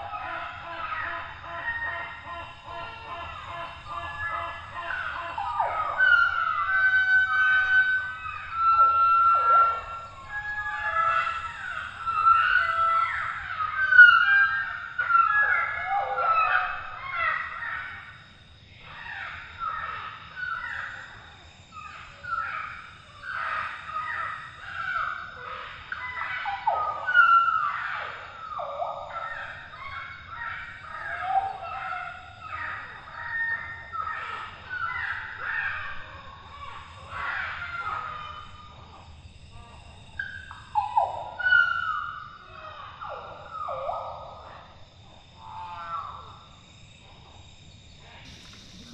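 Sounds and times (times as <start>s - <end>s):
tropical forest birds chirping: 0.0s - 48.9s.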